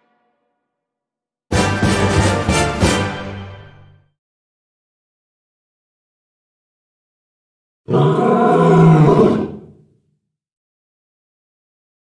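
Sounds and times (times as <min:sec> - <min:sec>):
loud pitched roar: 0:07.9 - 0:09.7.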